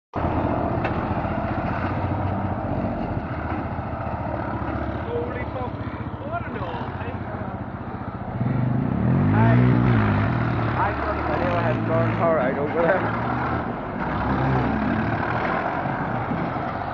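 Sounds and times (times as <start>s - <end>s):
tractor diesel engine revving: 0.2s - 16.9s.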